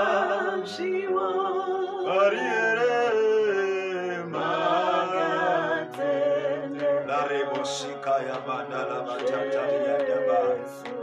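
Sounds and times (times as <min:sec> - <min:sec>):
men singing a worship song: 0:00.0 - 0:11.0.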